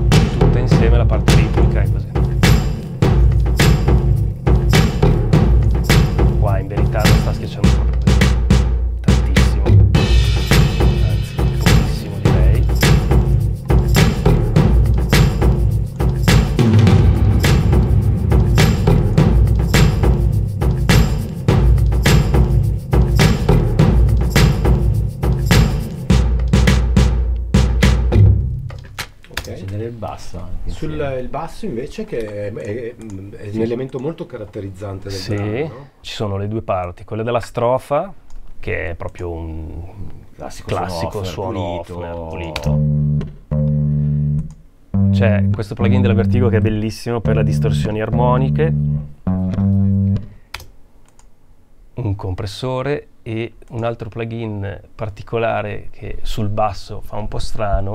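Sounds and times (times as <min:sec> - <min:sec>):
bass guitar low notes: 0:00.0 - 0:02.5, 0:03.1 - 0:20.9, 0:42.4 - 0:50.3
heavy low-end pulse: 0:00.0 - 0:25.6
drum and percussion beat: 0:00.0 - 0:29.0.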